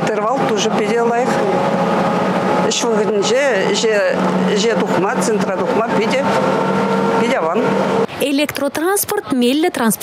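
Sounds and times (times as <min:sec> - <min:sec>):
trolleybus hum: 0:00.0 - 0:10.0.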